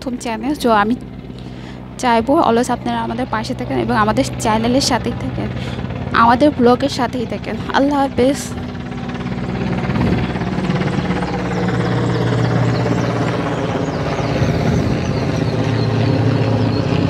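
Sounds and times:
low mechanical drone: 0.0 - 17.0.

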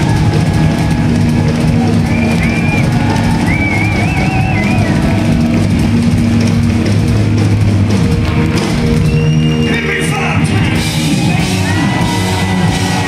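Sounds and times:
distorted electric guitars: 0.0 - 13.0
drum kit: 0.0 - 13.0.

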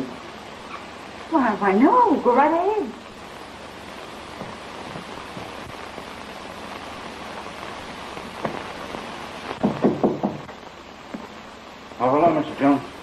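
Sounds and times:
film soundtrack hiss: 0.0 - 13.0
knocks: 9.6 - 10.5.

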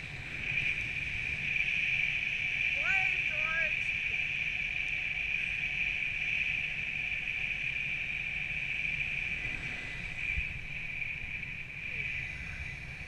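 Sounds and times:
wind buffeting microphone: 8.0 - 13.0.

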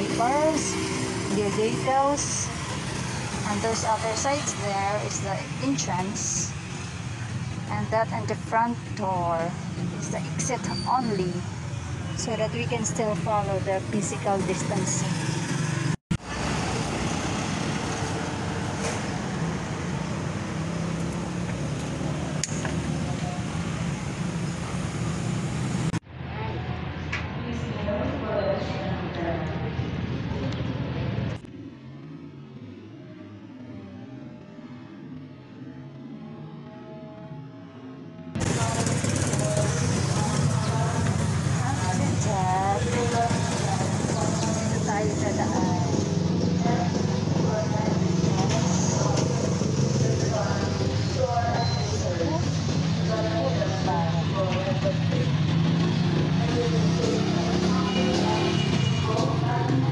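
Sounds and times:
indistinct voices: 0.0 - 15.6, 32.9 - 59.9
road traffic rushing by: 0.0 - 36.7, 38.3 - 59.9.

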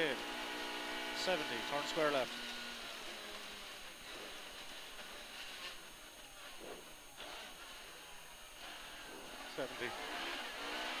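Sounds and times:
tyres on wet road: 0.0 - 5.8, 6.4 - 11.0.

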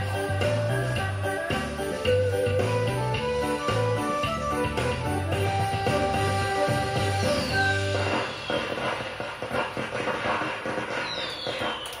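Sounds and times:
background noise: 0.0 - 12.0
dance music: 0.0 - 12.0
faint falling whistle: 10.9 - 12.0.

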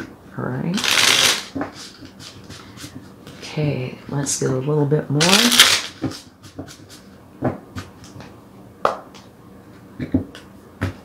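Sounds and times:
cards riffle-shuffling: 0.8 - 3.0, 5.2 - 7.0.

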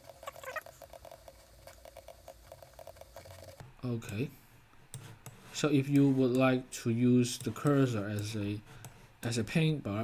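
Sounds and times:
mouse scroll wheel ticking: 0.0 - 4.2.

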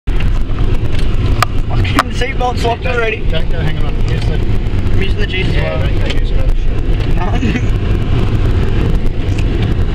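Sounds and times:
vehicle engine rumble and jolting: 0.1 - 9.9.

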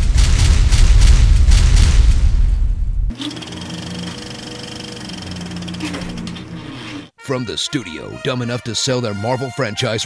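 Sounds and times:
rapid mechanical clatter: 0.0 - 2.2
low hum: 0.0 - 3.2.

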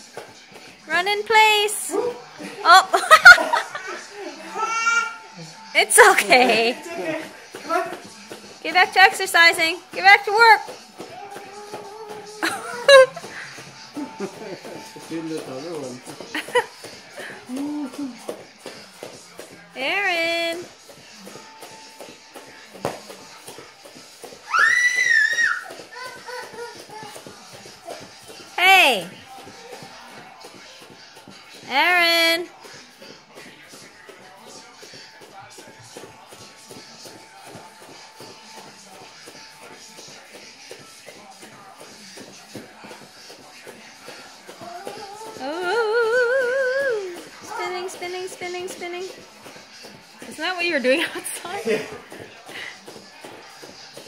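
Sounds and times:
faint music: 0.0 - 54.0
bare feet thudding on foam mat: 9.8 - 19.6, 20.6 - 28.6.

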